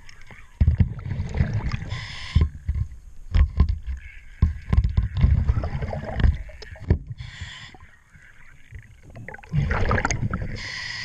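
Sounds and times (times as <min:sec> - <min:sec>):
exhaled bubbles rumbling: 0:00.6 - 0:02.0, 0:04.9 - 0:07.2, 0:08.7 - 0:10.7
regulator hiss: 0:01.9 - 0:02.6, 0:10.5 - 0:11.0.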